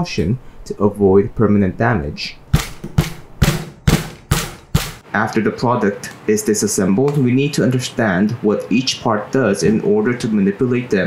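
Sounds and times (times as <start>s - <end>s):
tool hammering on plastic: 2.5s - 5.0s.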